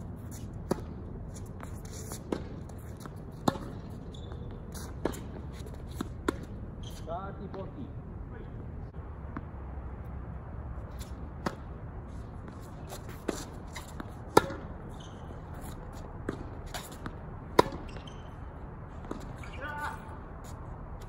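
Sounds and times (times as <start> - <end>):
tennis ball bouncing on court: 0.3 - 7.7, 9.2 - 9.6, 11.0 - 11.8, 12.4 - 20.0
tennis ball struck by racket: 0.5 - 1.0, 1.6 - 4.0, 4.8 - 6.6, 11.0 - 11.8, 12.4 - 18.3.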